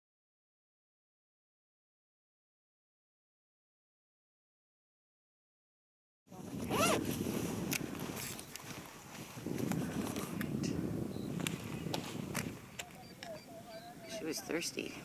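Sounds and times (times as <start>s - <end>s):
wind rumble on microphone: 6.3s - 15.0s.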